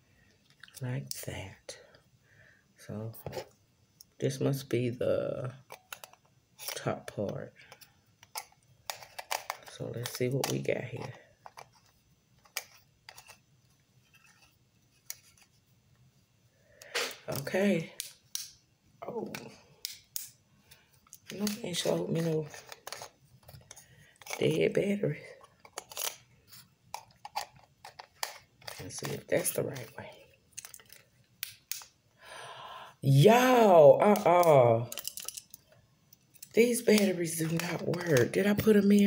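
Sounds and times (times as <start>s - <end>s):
flashlight parts clicking: 30.6s - 31.9s, 34.9s - 35.6s.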